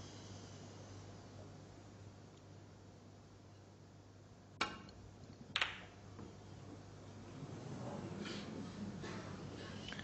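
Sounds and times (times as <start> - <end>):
cue tip clicking ball: 4.6 - 6.0.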